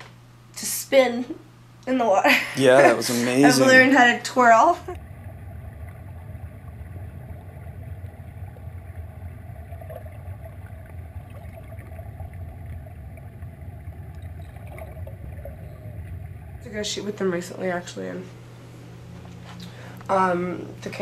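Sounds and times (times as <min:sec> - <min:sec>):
muffled underwater drone: 0:02.6 - 0:21.0.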